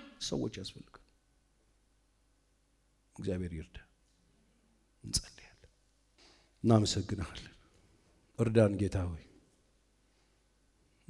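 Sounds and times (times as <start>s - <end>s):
faint whispered sound: 3.7s - 7.9s.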